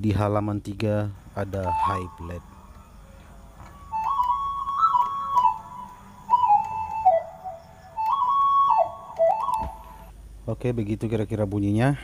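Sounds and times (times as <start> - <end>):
keyboard flute melody: 1.5 - 3.0, 3.6 - 10.1.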